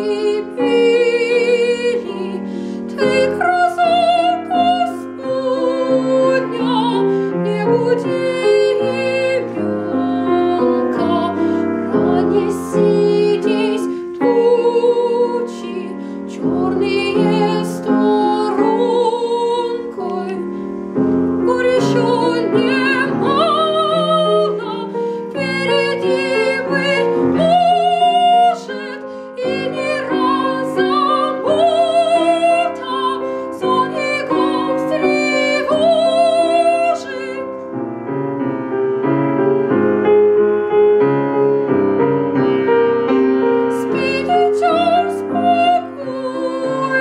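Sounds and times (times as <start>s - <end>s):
piano accompaniment: 0.0s - 47.0s
soprano singing: 0.0s - 47.0s.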